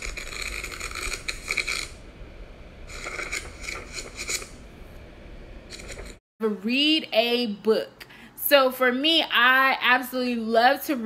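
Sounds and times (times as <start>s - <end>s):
book pages riffling: 2.9s - 4.6s, 5.7s - 6.2s.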